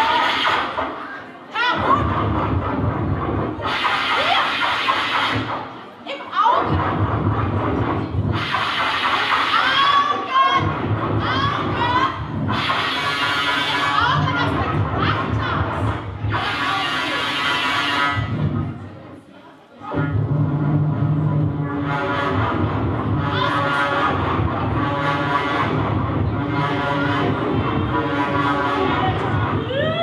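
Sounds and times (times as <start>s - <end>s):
loud rushing noise: 0.0s - 19.0s, 19.8s - 29.9s
electronic processing texture: 6.7s - 18.8s
low rumbling texture: 10.6s - 12.7s, 19.9s - 29.8s.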